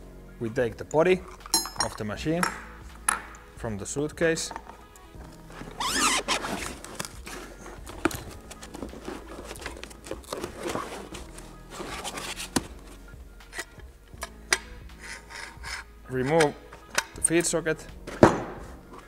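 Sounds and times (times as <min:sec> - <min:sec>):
quiet background music: 0:00.0 - 0:19.0
metal rubbing and scraping: 0:04.5 - 0:17.5.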